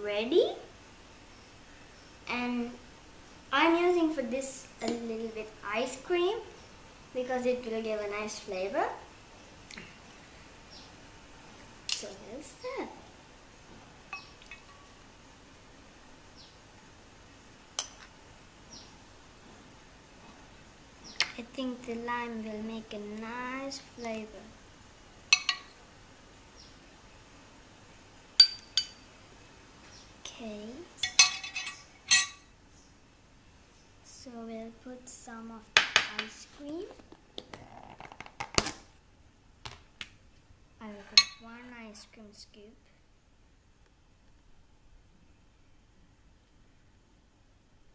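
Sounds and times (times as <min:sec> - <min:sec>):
low steady hiss: 0:00.0 - 0:47.9
metal spoon clinking on glass dish: 0:25.3 - 0:25.7, 0:28.4 - 0:29.0, 0:31.0 - 0:32.4
plastic lid crinkling and clicking: 0:37.0 - 0:38.8.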